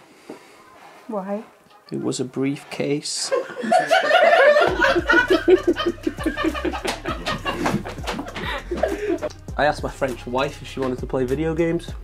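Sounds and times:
woman laughing hard: 0:03.4 - 0:09.3.

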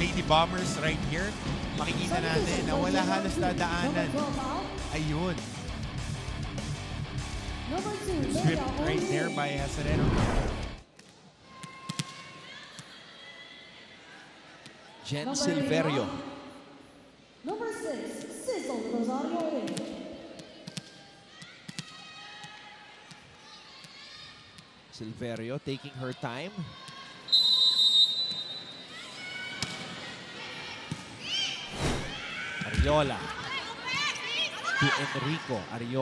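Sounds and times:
faint arena background: 0:00.0 - 0:36.0
referee's whistle: 0:27.3 - 0:28.9.

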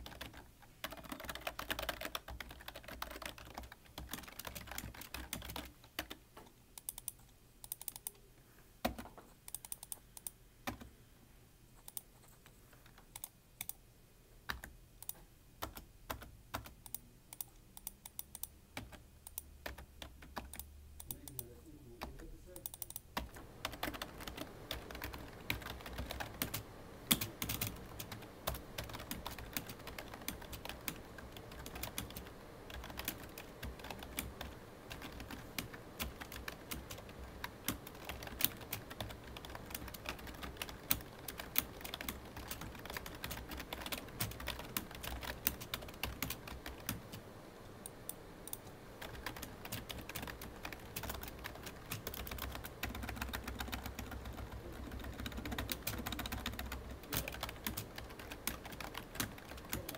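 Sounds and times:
typing on computer keyboard: 0:00.0 - 0:06.2, 0:06.8 - 0:08.2, 0:08.8 - 0:10.9, 0:11.8 - 0:13.8, 0:14.5 - 0:47.2, 0:48.5 - 0:59.9.

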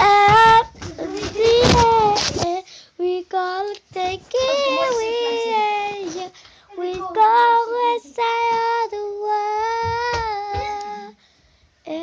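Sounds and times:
young boy singing: 0:00.0 - 0:11.2.

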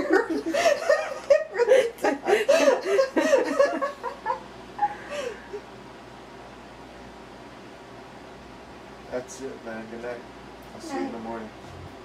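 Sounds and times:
soft laughter: 0:00.0 - 0:05.7.

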